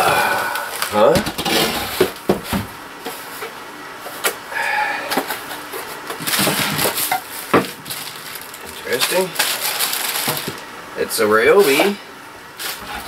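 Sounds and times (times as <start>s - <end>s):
plastic wrapping rustling: 5.7s - 10.7s.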